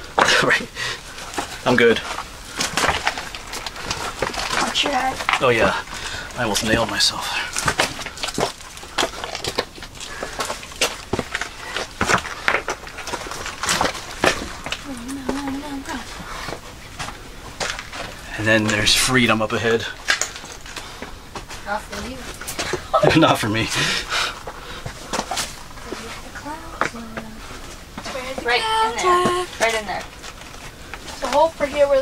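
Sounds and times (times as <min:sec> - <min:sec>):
footsteps on loose rock: 0:00.0 - 0:32.0
person laughing: 0:22.9 - 0:23.4.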